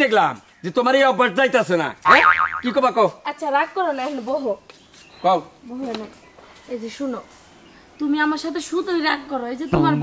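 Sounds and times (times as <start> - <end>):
comedy boing sound effect: 2.1 - 2.8
man and woman talking: 9.4 - 10.0.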